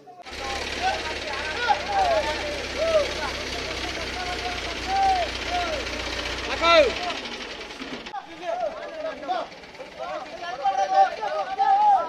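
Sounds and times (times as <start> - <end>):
men shouting short calls: 0.0 - 12.0.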